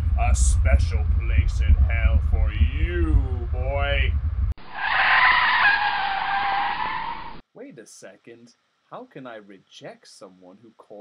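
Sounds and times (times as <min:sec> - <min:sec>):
deep rumble: 0:00.0 - 0:05.0
tire screech sound effect: 0:04.6 - 0:07.4.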